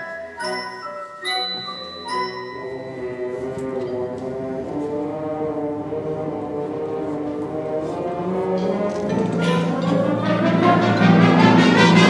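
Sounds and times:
wind ensemble sustained chords: 2.5 - 12.0.

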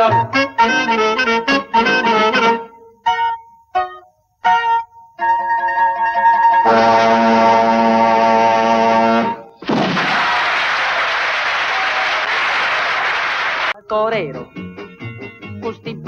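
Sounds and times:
swing band playing chords: 0.0 - 4.8, 12.6 - 16.0
audience applauding: 9.8 - 13.8.

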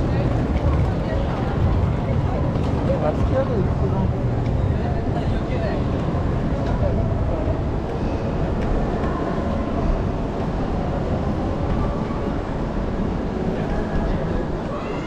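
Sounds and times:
passersby voices: 0.0 - 15.0
traffic rumble: 0.0 - 15.0.

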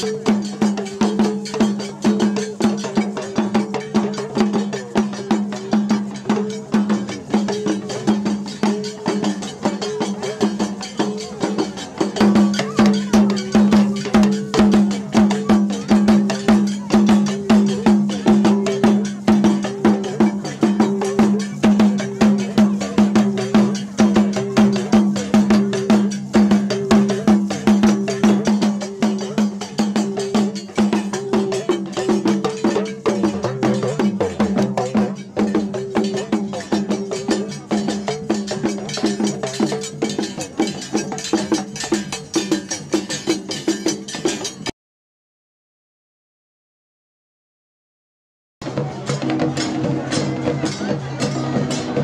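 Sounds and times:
large barrel drum: 0.0 - 44.0
talking drums: 0.0 - 44.7, 48.6 - 52.0.

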